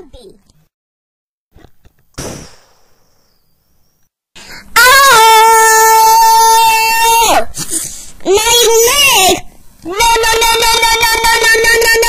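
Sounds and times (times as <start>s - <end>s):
sudden hit: 2.2s - 3.8s
loud long cry: 4.8s - 7.6s.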